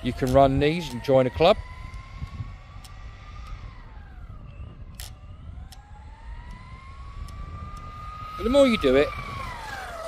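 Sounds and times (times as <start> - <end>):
rc car motor whine: 0.0 - 10.0.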